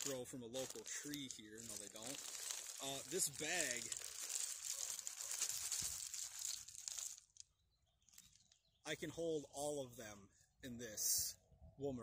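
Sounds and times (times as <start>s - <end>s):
plastic bag crinkling: 0.0s - 7.5s.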